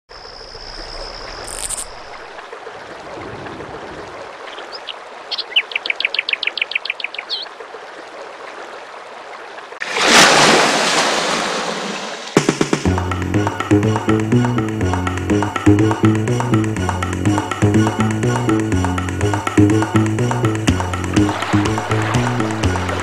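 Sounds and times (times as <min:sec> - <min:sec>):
birds calling: 0:02.9 - 0:07.6.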